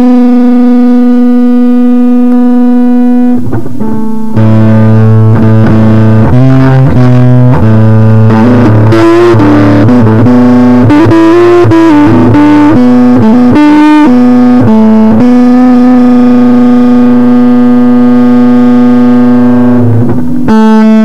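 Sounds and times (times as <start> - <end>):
distorted electric guitar lead: 0.0 - 21.0.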